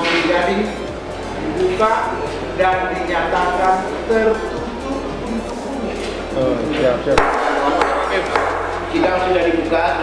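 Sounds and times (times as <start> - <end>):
wooden gavel striking: 7.2 - 8.8.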